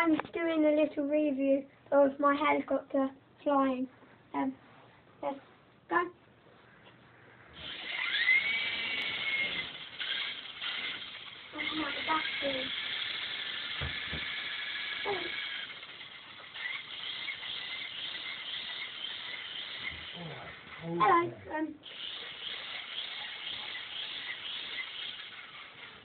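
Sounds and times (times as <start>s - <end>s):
toy helicopter motor whine: 7.6s - 21.0s, 21.8s - 26.0s.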